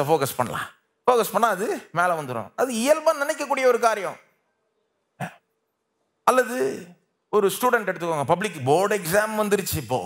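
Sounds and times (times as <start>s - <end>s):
man clearing his throat: 5.2s - 5.5s.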